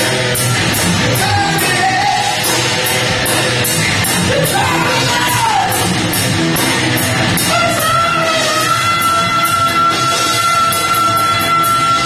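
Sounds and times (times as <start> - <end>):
distorted electric guitar: 0.0 - 12.0
drums and cymbals: 0.0 - 12.0
singer yelling a long note: 4.3 - 5.9, 7.5 - 12.0.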